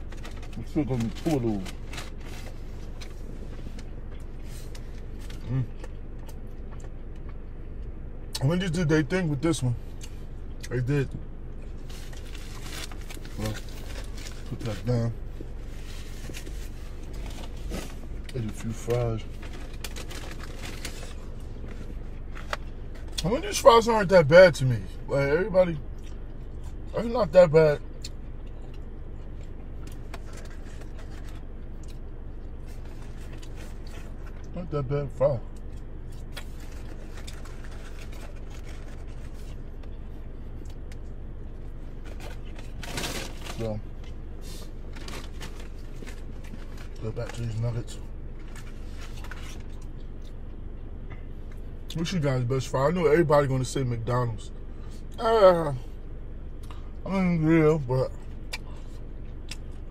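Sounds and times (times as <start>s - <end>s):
low hum in car cabin: 0.0s - 59.9s
food packaging rustling: 19.2s - 22.5s, 36.4s - 39.5s.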